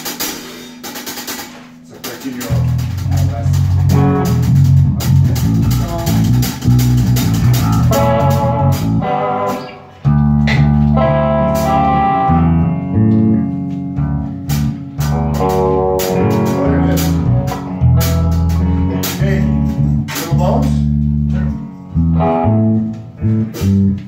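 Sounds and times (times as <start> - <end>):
drum kit with cymbal hits: 0.0 - 12.2, 14.4 - 21.1, 22.6 - 24.0
electric bass line: 1.0 - 24.0
higher melodic part: 1.4 - 24.0.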